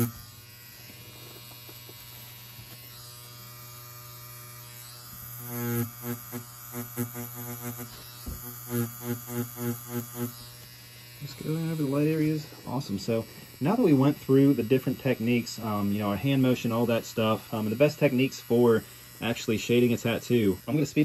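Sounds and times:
tattoo machine buzzing: 0.0s - 21.0s.

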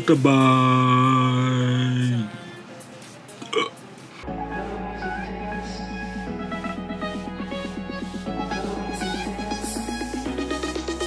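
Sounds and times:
electronic music with bass beat: 0.0s - 11.0s
man burping: 3.4s - 3.8s.

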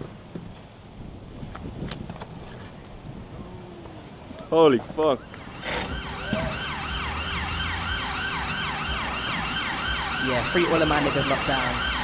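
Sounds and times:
wailing siren sound effect: 5.1s - 12.0s.

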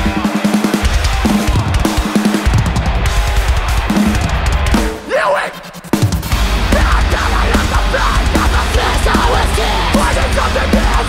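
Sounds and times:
chugging distorted guitar and bass: 0.0s - 11.0s
rapid drum-kit hits: 0.0s - 11.0s.

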